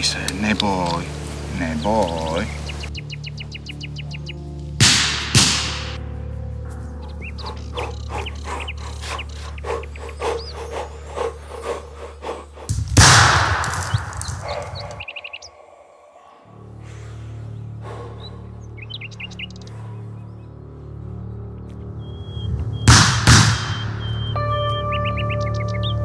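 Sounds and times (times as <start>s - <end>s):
dramatic music with low drone: 0.0s - 26.0s
sharp cracks: 4.8s - 6.0s, 12.7s - 15.1s, 22.9s - 24.0s
pistol shot with echo: 22.9s - 23.9s.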